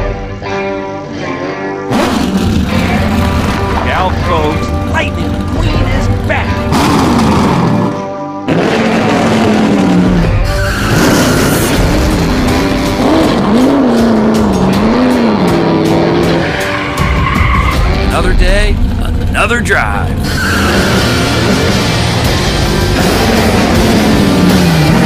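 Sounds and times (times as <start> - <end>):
music: 0.0 - 25.0
race car engine revving: 1.9 - 25.0.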